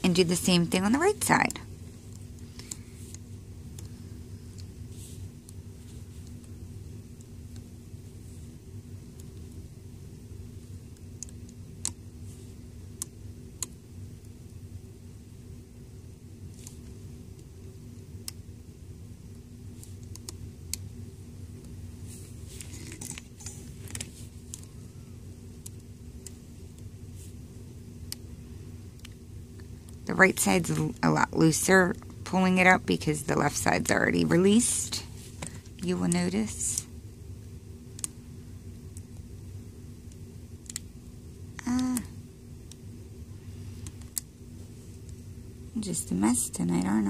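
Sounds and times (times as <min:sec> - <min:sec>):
low background hum: 0:00.0 - 0:47.0.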